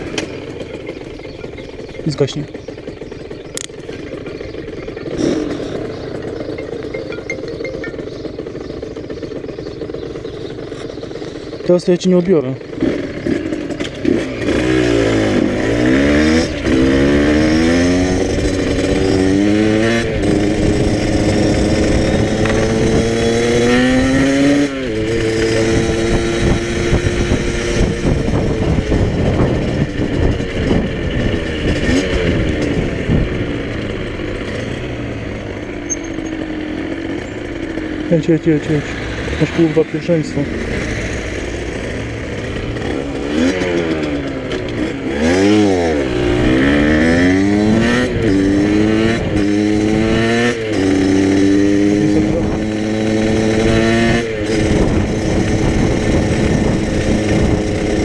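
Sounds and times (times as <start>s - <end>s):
motorcycle throttle blips: 0.0s - 11.8s, 12.6s - 58.0s
motorcycle engine accelerating: 0.0s - 58.0s.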